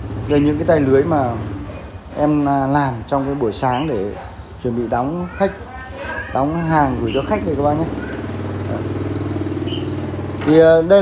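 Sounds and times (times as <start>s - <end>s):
engine idling: 0.0s - 4.9s, 6.4s - 11.0s.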